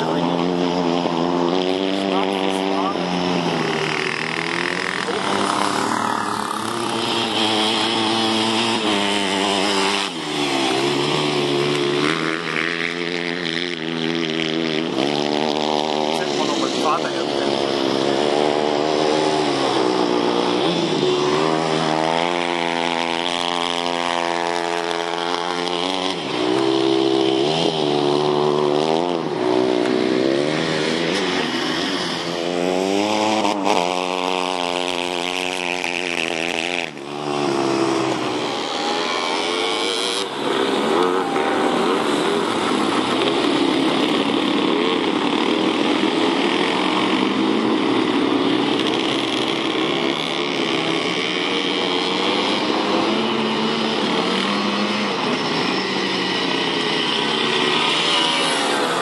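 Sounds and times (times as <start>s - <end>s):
go-kart engine revving: 0.0s - 59.0s.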